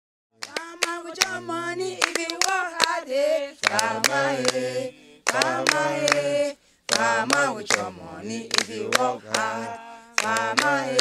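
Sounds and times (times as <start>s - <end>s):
sharp hand claps: 0.4s - 3.0s, 3.6s - 9.6s, 10.2s - 11.0s
voices singing long notes: 0.4s - 11.0s.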